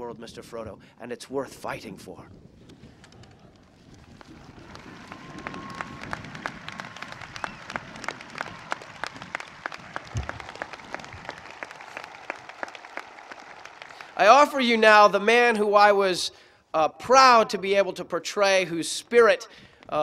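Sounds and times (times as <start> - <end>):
crowd applauding: 4.0 - 15.1.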